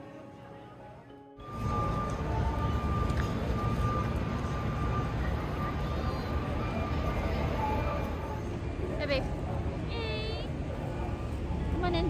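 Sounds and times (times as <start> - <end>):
faint high whine: 1.4 - 9.0
traffic rumble: 1.4 - 12.0.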